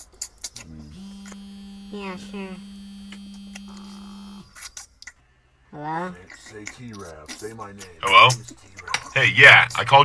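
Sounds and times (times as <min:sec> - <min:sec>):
mobile phone buzzing: 0:00.7 - 0:04.6.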